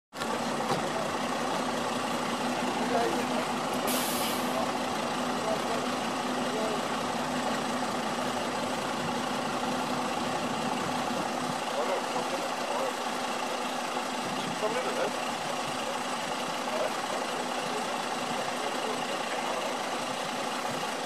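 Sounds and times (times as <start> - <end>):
bus diesel engine idling: 0.2 - 21.0
air hiss: 3.8 - 4.6.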